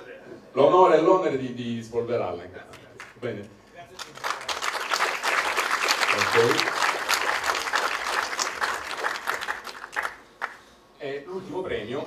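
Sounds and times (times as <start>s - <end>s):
audience applause: 4.0s - 10.6s.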